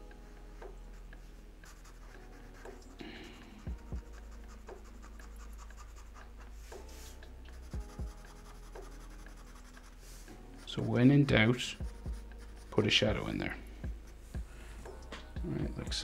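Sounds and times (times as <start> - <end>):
marker pen scratching on paper: 1.6 - 13.1.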